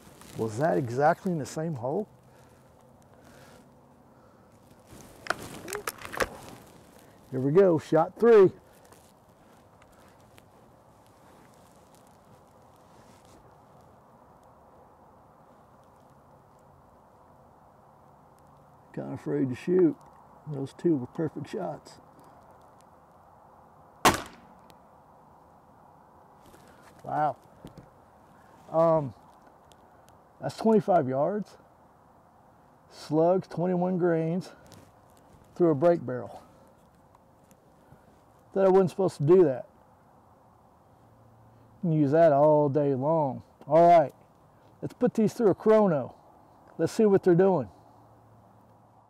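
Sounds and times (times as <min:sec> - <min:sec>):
rifle barrel clunking shut: 0:24.1 - 0:24.6.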